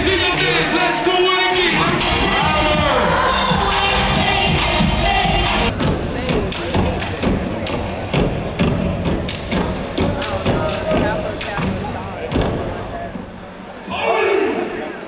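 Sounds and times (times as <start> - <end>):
loud music: 0.0 - 11.6.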